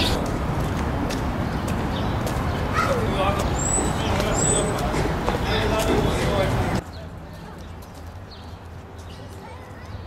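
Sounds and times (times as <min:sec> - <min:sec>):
footsteps on stone paving: 0:00.0 - 0:10.0
outdoor city hum: 0:00.0 - 0:10.0.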